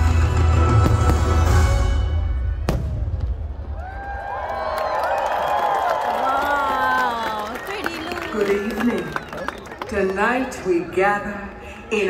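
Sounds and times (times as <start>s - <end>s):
music: 0.0s - 2.6s
sharp firework bang: 2.6s - 3.5s
crowd cheering: 2.7s - 10.8s.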